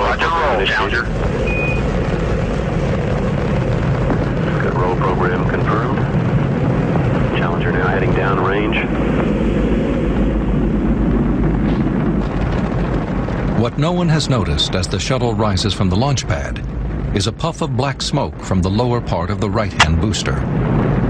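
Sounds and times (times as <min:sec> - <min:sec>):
rocket launch rumble: 0:00.0 - 0:21.0.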